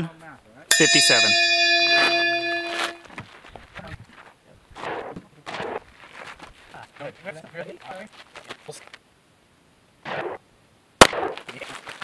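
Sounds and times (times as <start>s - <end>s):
bell-like chime: 0.7s - 3.1s
indistinct voices talking: 0.7s - 3.1s.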